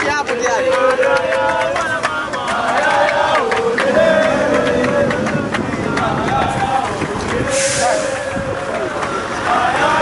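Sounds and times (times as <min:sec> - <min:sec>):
drum beats: 0:00.0 - 0:07.6
group of voices chanting: 0:00.0 - 0:10.0.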